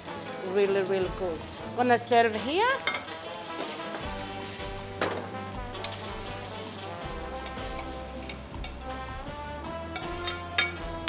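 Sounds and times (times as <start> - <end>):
pasta sizzling in frying pan: 0.0 - 9.3, 10.0 - 11.0
background music: 0.0 - 11.0
metal tongs clicking: 5.8 - 6.0.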